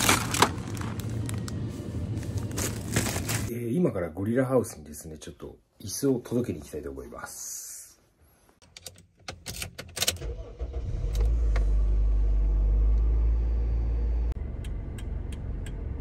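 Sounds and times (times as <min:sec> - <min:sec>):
car engine starting and idling: 0:00.0 - 0:03.5, 0:09.8 - 0:16.0.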